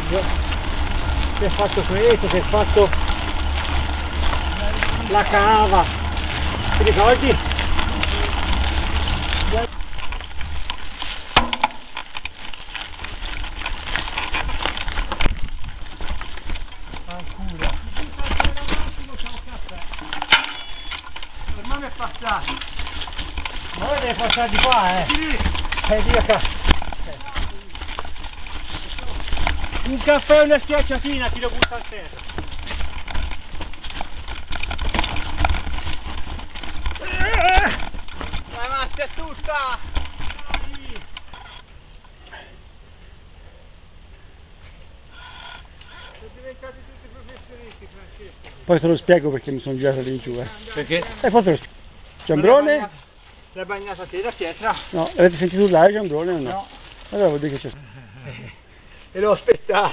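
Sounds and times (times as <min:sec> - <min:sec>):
bike clicks and rattles: 0:00.0 - 0:59.9
bike tyres crunching on dirt: 0:00.0 - 0:59.9.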